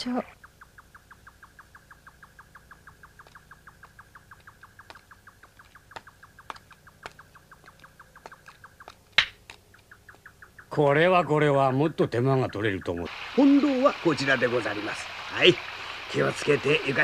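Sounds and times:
insect chirping: 0:00.0 - 0:17.0
sharp clicks: 0:03.1 - 0:10.6.

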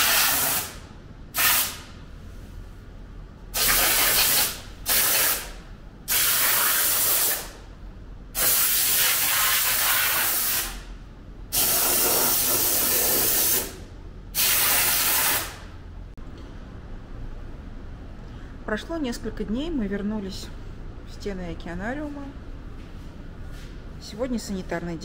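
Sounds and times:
aerosol spray can hissing: 0:00.0 - 0:00.8, 0:11.6 - 0:13.8.

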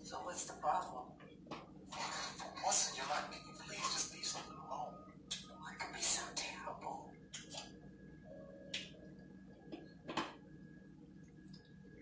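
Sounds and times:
tv drama dialogue from small speaker: 0:00.0 - 0:11.2.

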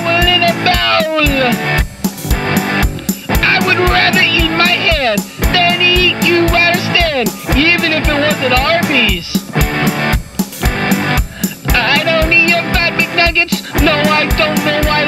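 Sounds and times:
drum kit with kick drum: 0:00.0 - 0:15.0
rock guitar bending notes: 0:00.0 - 0:15.0.

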